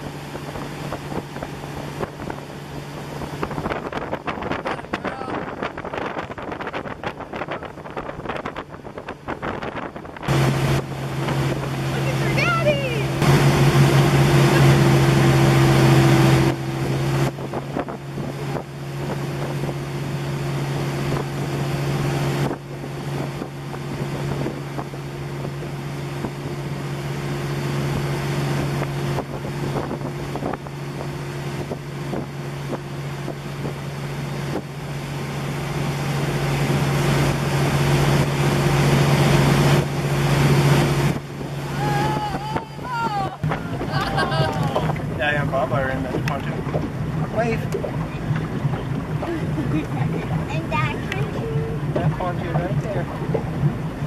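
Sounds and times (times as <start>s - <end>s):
motorboat engine running: 0.0s - 54.0s
wake splashing: 0.0s - 54.0s
wind buffeting microphone: 0.0s - 54.0s.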